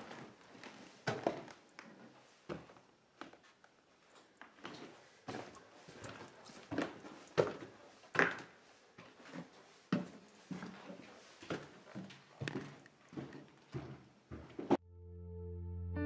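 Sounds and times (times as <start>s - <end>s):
footsteps on wooden stairs: 4.5s - 14.8s.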